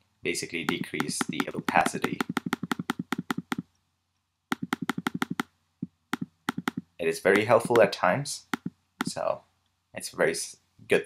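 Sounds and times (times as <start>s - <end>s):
mouse button clicking rapidly: 0.7s - 3.7s, 4.5s - 5.5s, 6.2s - 7.9s, 8.5s - 9.1s.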